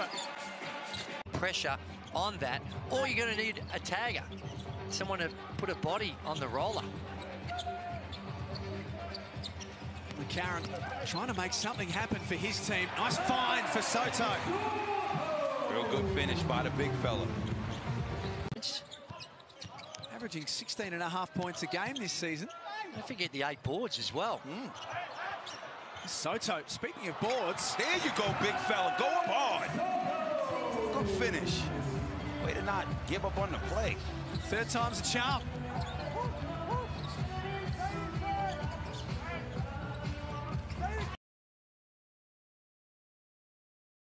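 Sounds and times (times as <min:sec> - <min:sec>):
music playing: 0:00.0 - 0:18.5, 0:27.2 - 0:41.2
arena crowd noise: 0:00.0 - 0:41.2.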